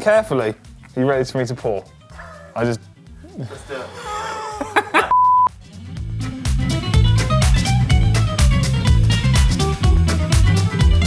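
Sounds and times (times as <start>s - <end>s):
upbeat music with heavy bass: 1.2s - 11.0s
beep tone: 5.1s - 5.5s.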